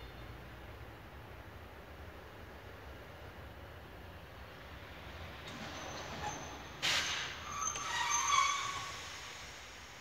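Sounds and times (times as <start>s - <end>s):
locomotive wheels squealing: 5.5s - 9.6s.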